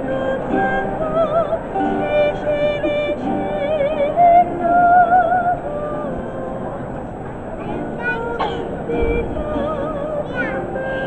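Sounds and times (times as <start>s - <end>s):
soprano singing with vibrato: 0.0s - 7.0s, 7.6s - 11.0s
guitar accompaniment: 0.0s - 11.0s.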